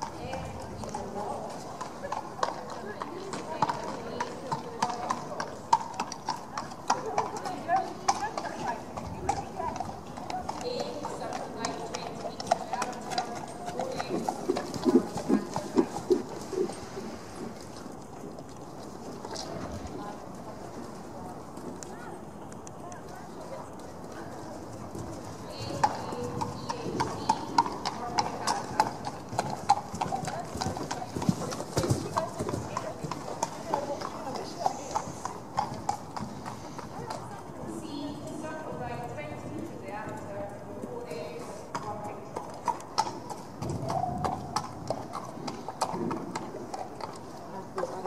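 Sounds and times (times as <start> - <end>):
horse hooves trotting on sand: 0.0 - 48.0.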